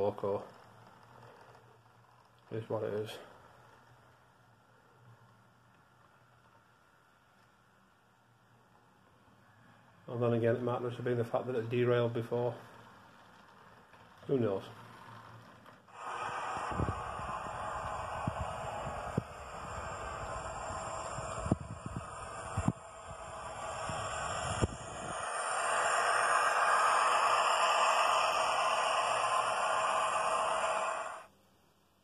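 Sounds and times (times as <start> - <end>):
model train running on rails: 0.0 - 31.3.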